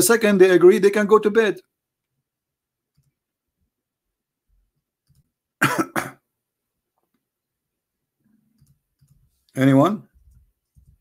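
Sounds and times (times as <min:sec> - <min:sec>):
man coughing: 0:05.6 - 0:06.3.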